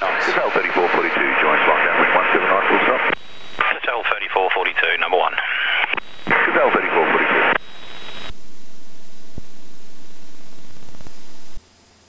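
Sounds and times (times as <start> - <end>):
faint low hum: 0.0 - 11.6
radio static hiss: 0.0 - 11.6
faint radio clicks: 1.6 - 8.4, 10.6 - 11.2.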